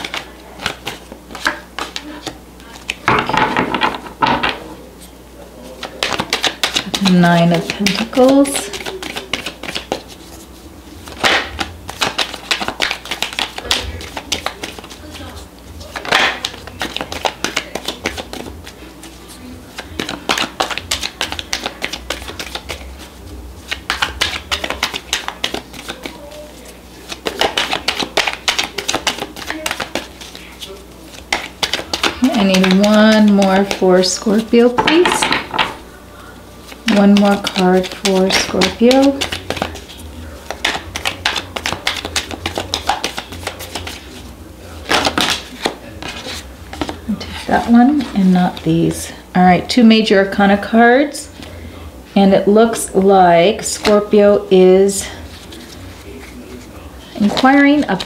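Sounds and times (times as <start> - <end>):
cards being shuffled: 0.0 - 4.2, 5.7 - 48.7, 53.6 - 54.2, 55.0 - 58.0.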